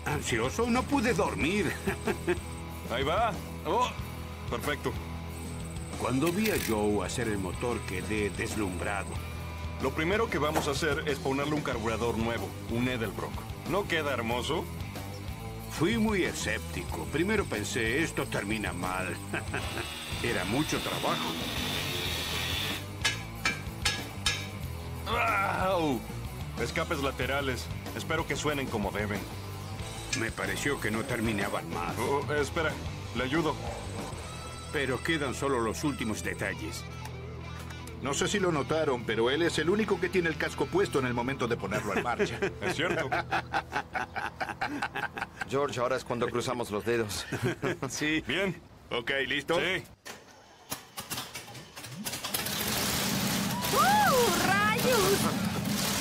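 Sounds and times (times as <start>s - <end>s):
background music: 0.0s - 47.6s, 52.0s - 56.0s
sharp metallic clicks: 6.0s - 6.9s
angle grinder cutting metal: 19.2s - 23.6s
starter cranking engine: 50.4s - 56.0s.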